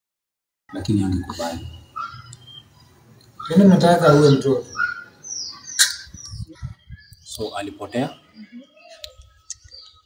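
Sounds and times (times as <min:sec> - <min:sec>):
bird chirping: 0:00.7 - 0:10.0.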